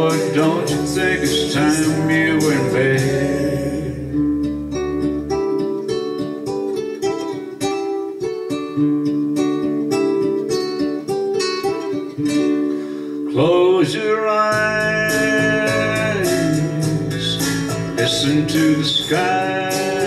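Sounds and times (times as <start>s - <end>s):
plucked guitar melody: 0.0s - 20.0s.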